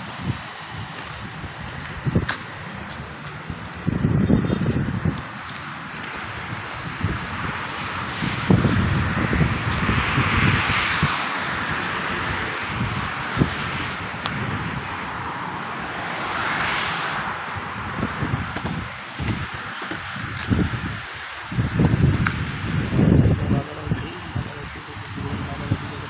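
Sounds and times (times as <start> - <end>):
traffic rushing: 0.0 - 26.0
wind rumble on microphone: 0.0 - 26.0.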